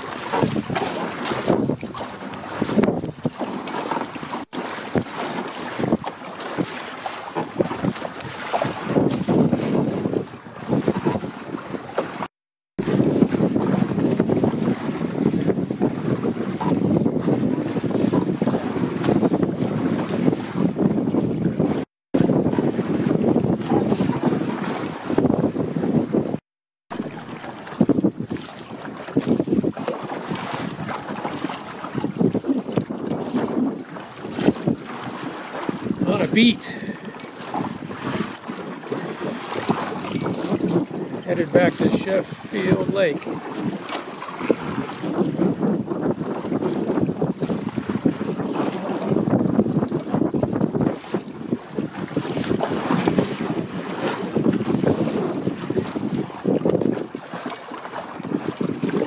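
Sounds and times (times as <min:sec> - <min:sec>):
water slapping against hulls: 0:00.0 - 0:59.0
wind buffeting microphone: 0:00.0 - 0:59.0.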